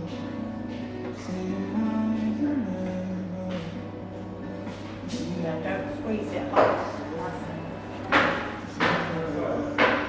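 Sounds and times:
customers chattering: 0:04.8 - 0:10.0.

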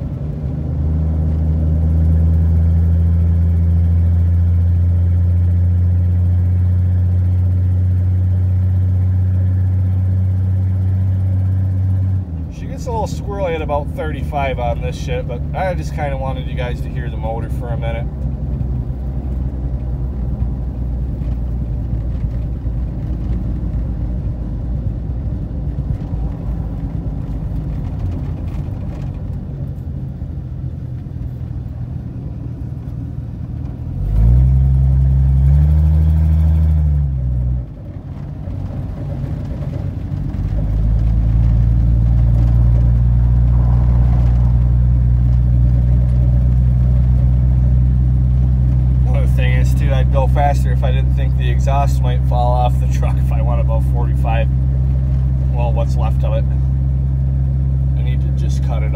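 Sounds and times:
truck engine droning while driving: 0:00.0 - 0:58.9.

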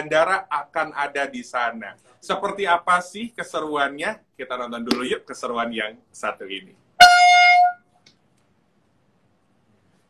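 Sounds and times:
loud steady horn tone: 0:07.0 - 0:07.9.

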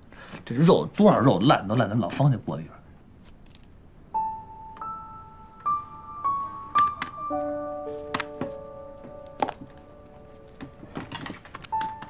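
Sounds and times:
soft background music: 0:04.1 - 0:12.0.

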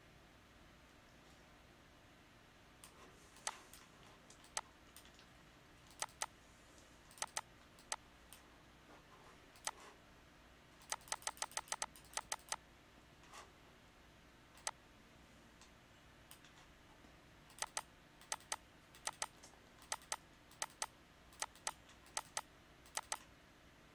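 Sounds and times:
computer mouse clicking: 0:02.8 - 0:06.3, 0:07.1 - 0:08.4, 0:09.6 - 0:09.8, 0:10.8 - 0:12.6, 0:14.6 - 0:14.8, 0:16.3 - 0:16.7, 0:17.5 - 0:23.3.

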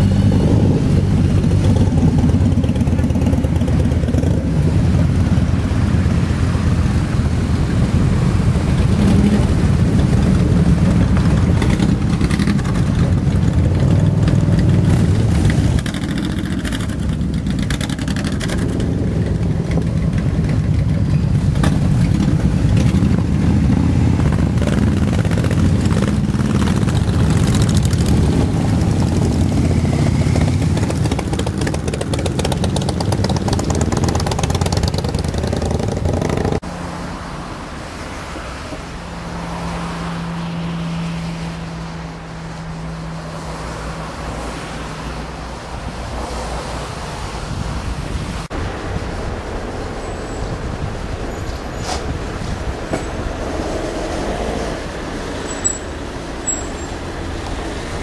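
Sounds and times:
motorcycles riding past: 0:00.0 - 0:37.0.

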